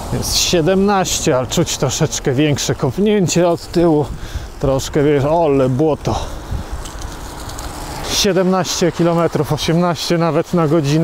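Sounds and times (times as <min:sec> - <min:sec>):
wind buffeting microphone: 0:00.0 - 0:09.6
tyres on wet road: 0:00.0 - 0:11.0.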